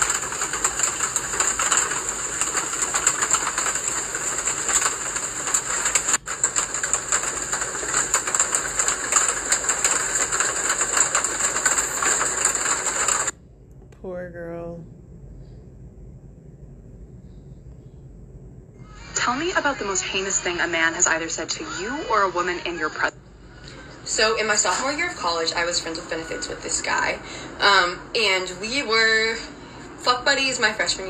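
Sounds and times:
harsh crackling hiss: 0.0s - 13.4s.

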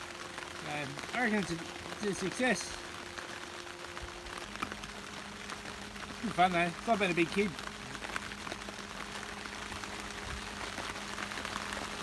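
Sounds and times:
faint steady hum: 0.0s - 12.0s
heavy rain on plastic tarp: 0.0s - 12.0s.

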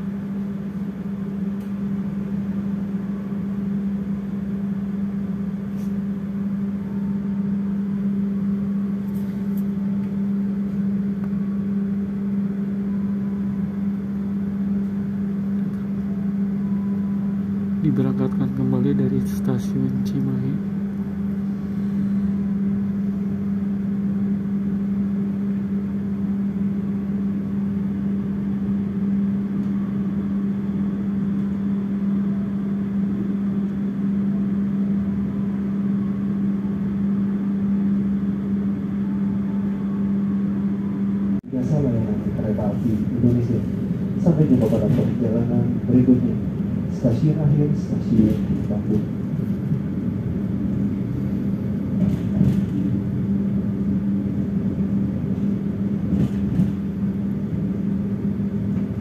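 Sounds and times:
train hum and rumble: 0.0s - 59.0s
clicks and knocks of train: 44.5s - 45.2s, 52.0s - 53.0s, 56.0s - 56.9s.

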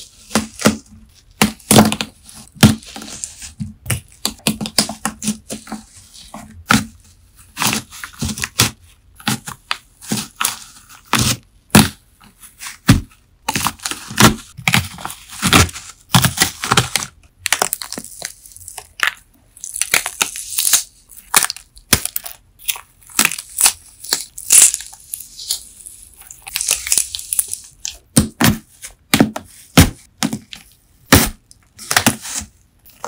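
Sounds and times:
waxy sponge crackling and crunching: 13.4s - 28.6s.

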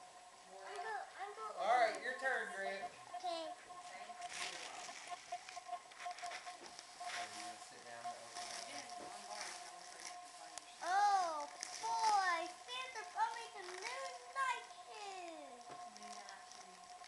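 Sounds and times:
wrapping paper tearing: 10.8s - 17.0s.

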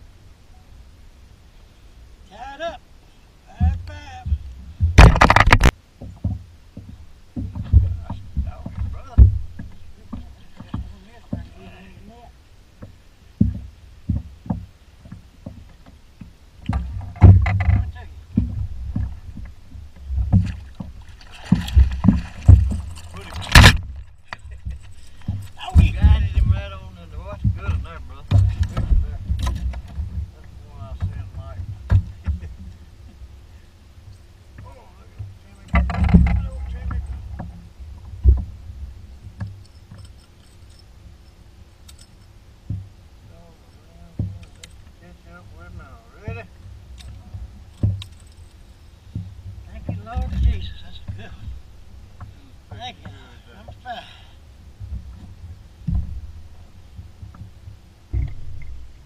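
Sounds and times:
faint steady hum: 0.0s - 59.0s
fishing gear knocking and rattling: 3.8s - 11.6s, 16.6s - 30.3s, 35.2s - 38.6s, 39.3s - 42.9s, 44.2s - 45.0s, 46.4s - 51.6s
sharp knock: 4.9s - 5.7s.

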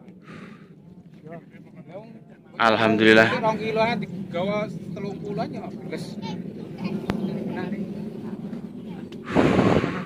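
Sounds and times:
loud rushing burst: 9.3s - 10.0s.

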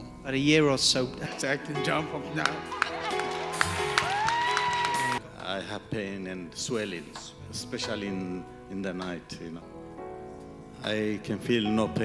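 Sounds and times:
live worship band music: 0.0s - 12.0s
crowd noise: 2.3s - 5.2s.

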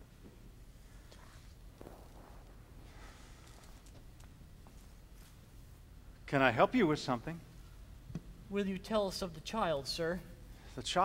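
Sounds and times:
soft footsteps on stage floor: 0.1s - 5.6s.

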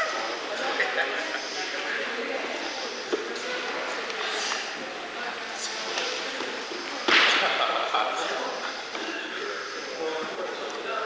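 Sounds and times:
sharp crack: 7.1s - 7.6s.

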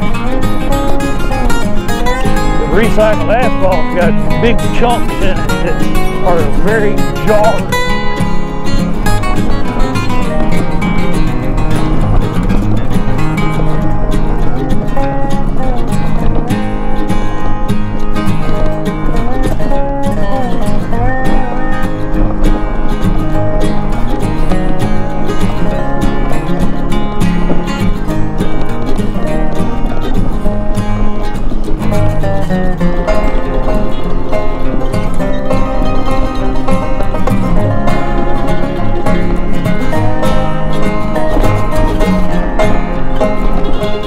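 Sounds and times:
background music with plucked strings: 0.0s - 44.0s.

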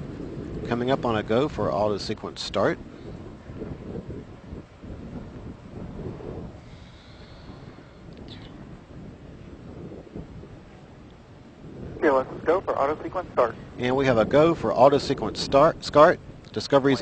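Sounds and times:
wind buffeting microphone: 0.0s - 17.0s.

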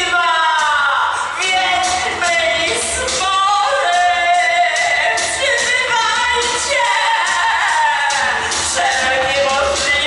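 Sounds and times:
people singing: 0.0s - 10.0s.

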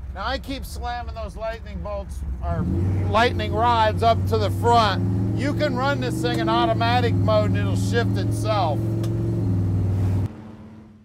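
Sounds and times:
car engine droning: 0.0s - 11.0s.

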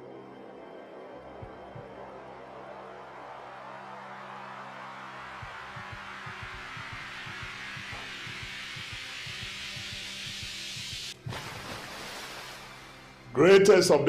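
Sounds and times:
soft low pulses: 0.0s - 9.5s
low drone: 0.0s - 13.4s
brightening hiss: 5.1s - 13.4s.

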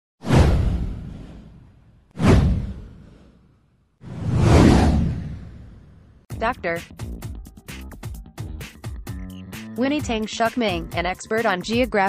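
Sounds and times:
whoosh with deep low rumble: 0.2s - 6.3s.

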